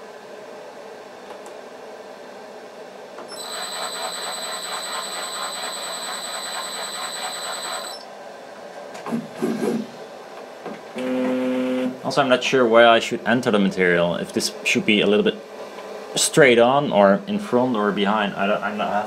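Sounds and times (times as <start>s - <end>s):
router spindle whine: 3.3s - 8.0s.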